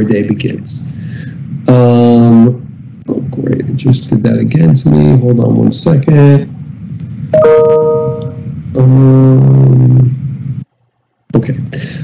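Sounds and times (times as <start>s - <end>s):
low held hum: 0.0s - 12.0s
chime of steady tones: 7.4s - 8.5s.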